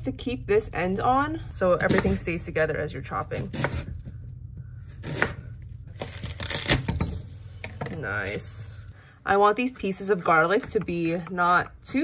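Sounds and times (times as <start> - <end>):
garlic skins crackling and tearing: 5.0 - 7.0.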